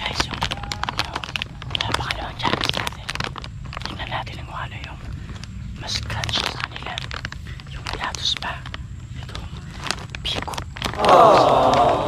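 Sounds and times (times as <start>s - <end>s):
plastic bag crinkling: 0.0s - 11.9s
crunchy chips being chewed: 0.0s - 12.0s.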